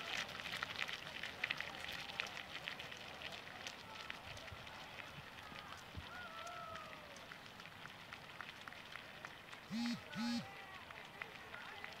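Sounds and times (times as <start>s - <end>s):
faint outdoor background: 0.0s - 12.0s
short steady beep: 9.7s - 10.4s.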